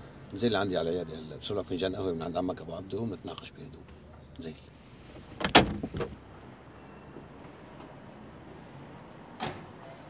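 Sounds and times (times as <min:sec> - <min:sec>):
car door clunk: 0:05.2 - 0:06.2.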